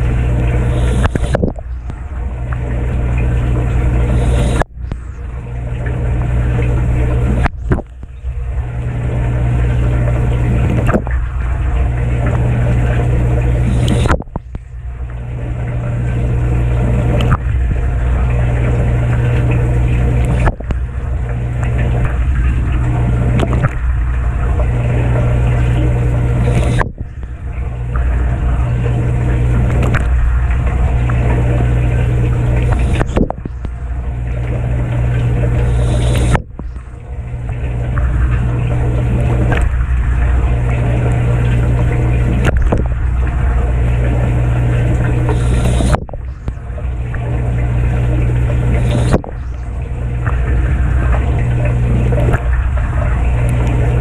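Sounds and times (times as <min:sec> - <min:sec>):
pump motor hum: 0:00.0 - 0:54.0
water spraying and splashing: 0:00.0 - 0:54.0.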